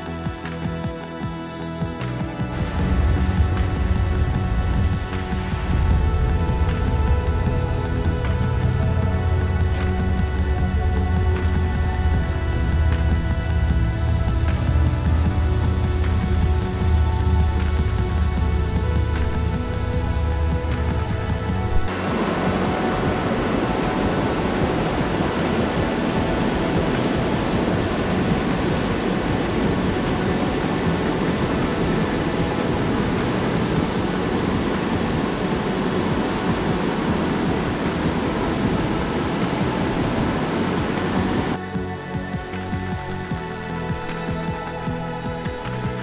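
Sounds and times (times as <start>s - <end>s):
background music: 0.0s - 46.0s
stream rushing over boulders: 0.0s - 46.0s.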